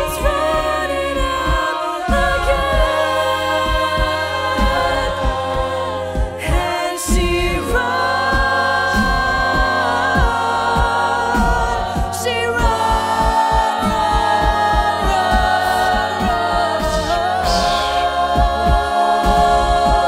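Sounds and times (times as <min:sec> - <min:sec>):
a cappella harmony chords: 0:00.0 - 0:20.0
beatboxing kick-drum beat: 0:00.0 - 0:20.0
soloist singing: 0:00.0 - 0:20.0.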